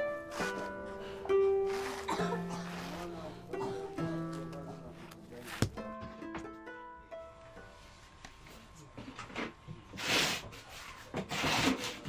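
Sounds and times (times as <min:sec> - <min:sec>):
mattress scraping bed frame: 0:01.5 - 0:04.0, 0:10.0 - 0:12.0.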